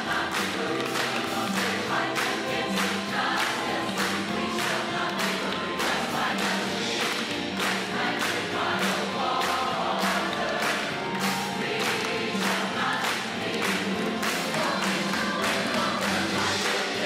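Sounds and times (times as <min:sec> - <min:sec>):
choir singing over a beat: 0:00.0 - 0:17.0.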